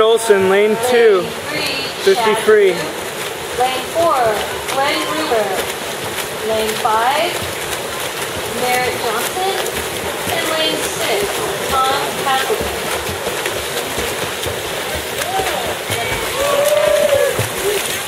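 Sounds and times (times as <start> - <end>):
people calling and shouting: 0.0 - 18.0
swimmers splashing water: 0.0 - 18.0.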